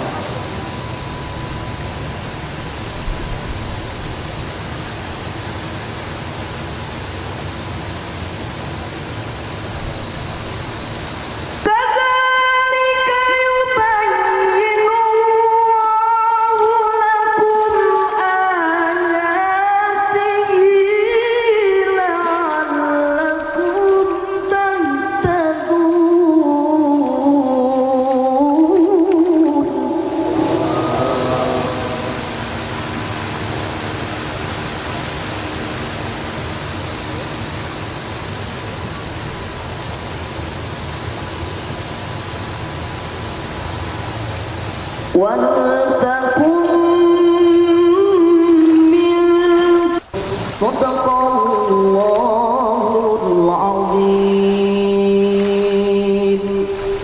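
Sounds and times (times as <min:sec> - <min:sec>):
steady background noise: 0:00.0 - 0:57.0
person chanting recitation: 0:11.7 - 0:32.5, 0:45.2 - 0:57.0.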